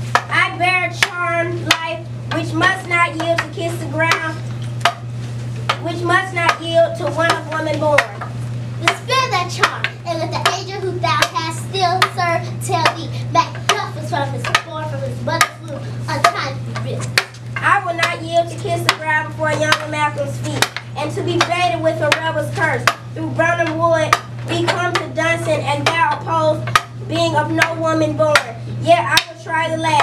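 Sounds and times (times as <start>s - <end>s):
steady low hum: 0.0s - 30.0s
children's voices: 0.3s - 4.4s, 5.8s - 8.2s, 8.8s - 30.0s.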